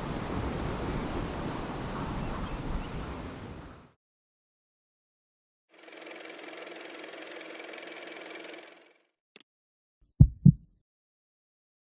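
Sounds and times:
engine-like hum: 5.8s - 9.1s
deep thumps: 10.2s - 10.7s.

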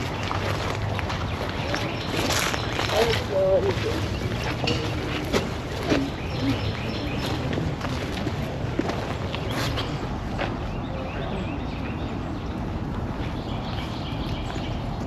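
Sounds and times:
faint indistinct voices: 0.0s - 13.9s.

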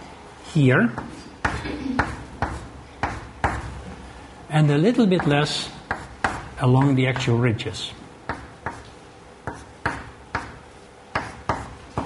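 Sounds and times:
chalk tapping on blackboard: 0.9s - 3.8s, 5.1s - 7.4s, 8.3s - 12.0s.

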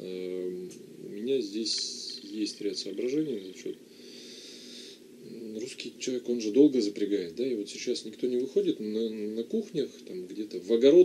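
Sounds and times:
man speaking: 0.0s - 3.8s, 5.2s - 11.0s
soft hiss: 0.0s - 11.0s.

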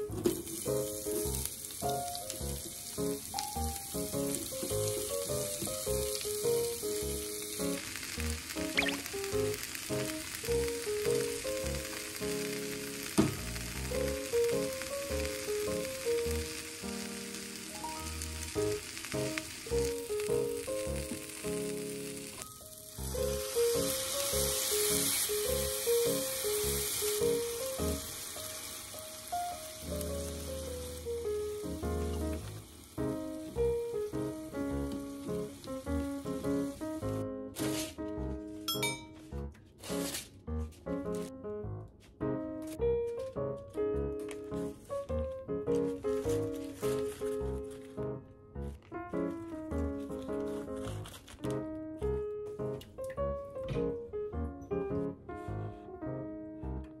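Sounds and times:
vegetables sizzling in oil: 0.0s - 38.0s, 45.7s - 47.9s
background music: 0.0s - 57.0s.

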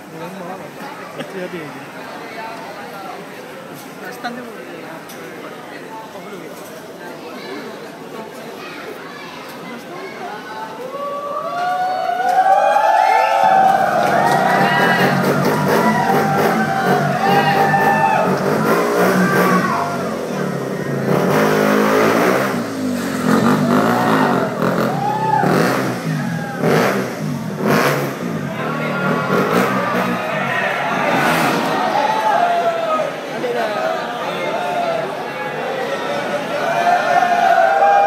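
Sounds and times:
crowd noise: 0.0s - 38.0s
motorcycle engine revving: 14.1s - 32.0s.

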